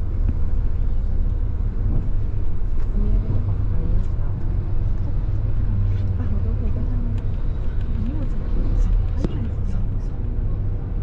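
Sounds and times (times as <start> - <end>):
bus engine rumble and road noise: 0.0 - 11.0.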